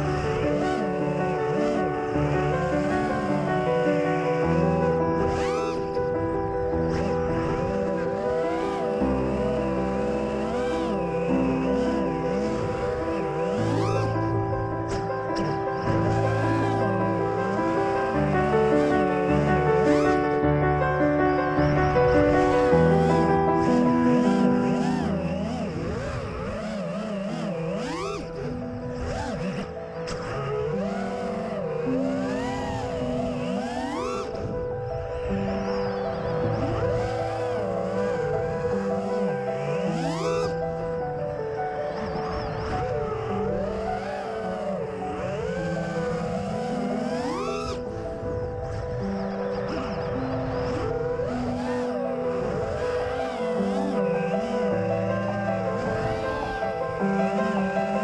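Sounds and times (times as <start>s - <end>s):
background music with held chords: 0.0s - 58.0s
drone motors whining: 0.0s - 58.0s.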